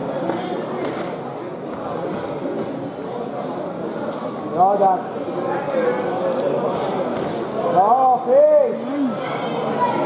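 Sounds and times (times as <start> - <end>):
people chattering in echoing hall: 0.0 - 10.0.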